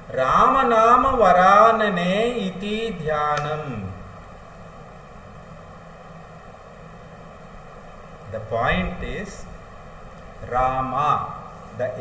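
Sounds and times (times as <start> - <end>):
faint hum: 0.0 - 12.0
steady hiss: 0.0 - 12.0.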